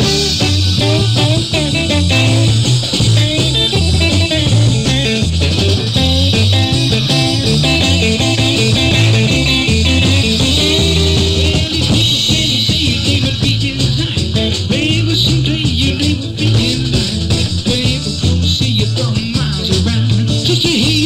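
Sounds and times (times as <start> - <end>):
electric guitar bending notes: 0.0 - 18.5
rock and roll band playing: 0.0 - 21.0.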